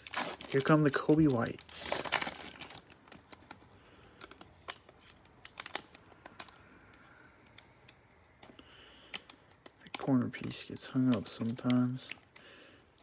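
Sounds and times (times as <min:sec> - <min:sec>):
foil wrapper crinkling: 0:00.0 - 0:13.0.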